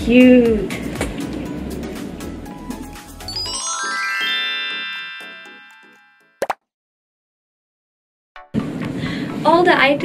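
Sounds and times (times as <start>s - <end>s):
chime-like jingle: 3.3s - 6.4s.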